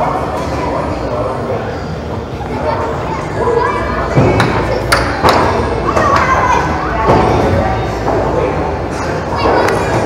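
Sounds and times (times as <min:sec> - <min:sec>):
children's voices: 0:02.4 - 0:04.9, 0:05.6 - 0:07.8.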